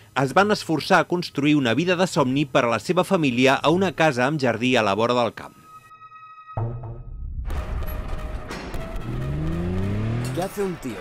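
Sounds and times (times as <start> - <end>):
car engines accelerating: 8.8 - 11.0.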